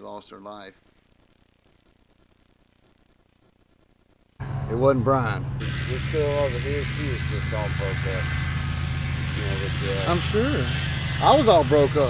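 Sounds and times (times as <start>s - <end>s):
low engine hum: 4.4s - 12.0s.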